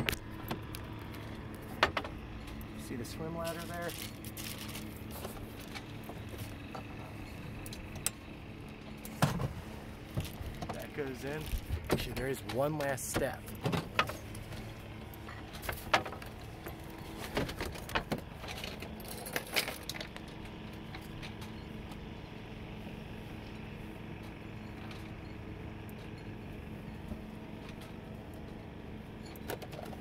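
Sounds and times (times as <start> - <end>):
steady low hum: 0.0 - 30.0
sharp knocks and clatters: 1.7 - 2.2.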